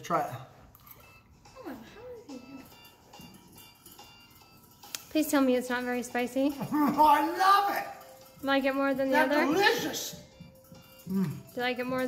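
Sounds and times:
man humming while chewing: 11.0 - 11.5.

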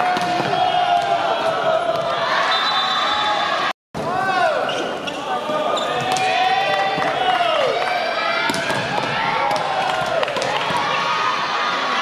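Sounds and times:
crowd chanting and cheering: 0.0 - 3.7.

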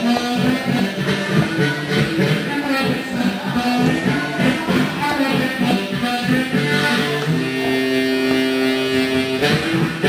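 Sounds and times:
amplified harmonica chord: 0.0 - 10.0
blues band accompaniment: 0.0 - 10.0.

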